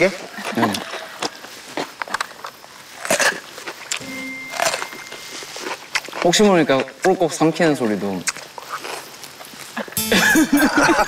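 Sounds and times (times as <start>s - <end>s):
chewing crunchy cucumber: 8.1s - 9.9s.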